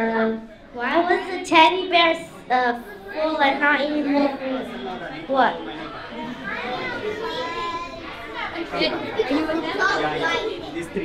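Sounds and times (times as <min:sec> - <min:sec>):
children talking softly: 0:00.0 - 0:11.0
child asking: 0:06.4 - 0:08.2.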